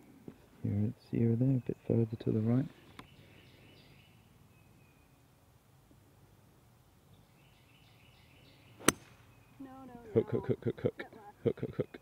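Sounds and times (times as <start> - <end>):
golf club striking ball: 8.8 - 9.3.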